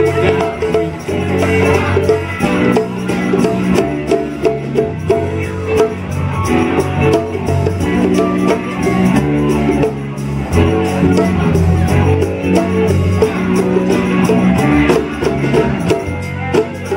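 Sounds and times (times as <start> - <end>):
conga percussion: 0.0 - 16.9
live funk band playing: 0.0 - 16.9.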